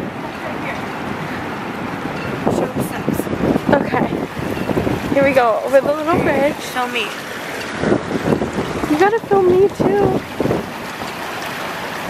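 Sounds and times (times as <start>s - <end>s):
surf rushing: 0.0s - 12.0s
wind buffeting microphone: 0.0s - 12.0s.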